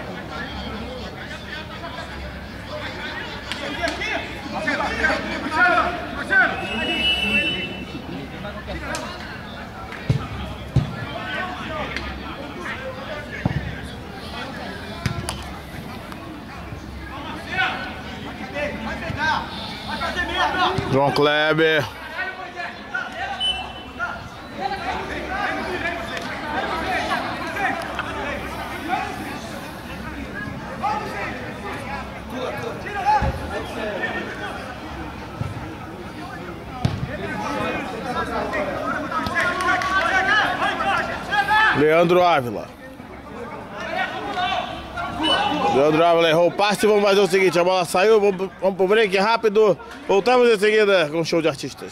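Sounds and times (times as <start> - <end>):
people calling out: 3.1 - 8.1, 14.2 - 34.7, 43.6 - 46.0.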